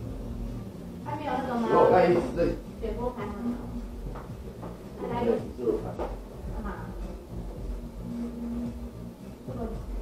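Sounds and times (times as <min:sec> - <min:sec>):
quiet bass-heavy karaoke music: 0:00.0 - 0:10.0.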